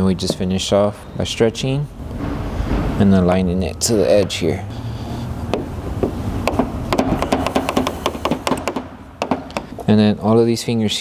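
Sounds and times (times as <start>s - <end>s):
steady low hum: 0.0s - 10.4s.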